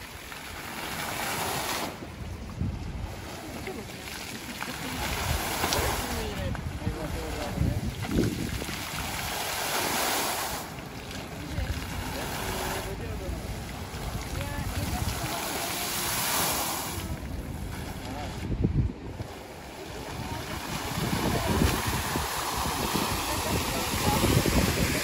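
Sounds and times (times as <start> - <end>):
fountain jets splashing into pool: 0.0 - 25.0
wind rumbling on microphone: 0.0 - 25.0.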